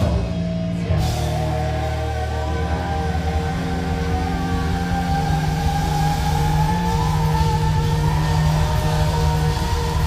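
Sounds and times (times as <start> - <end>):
heavy metal band droning chord: 0.0 - 10.0.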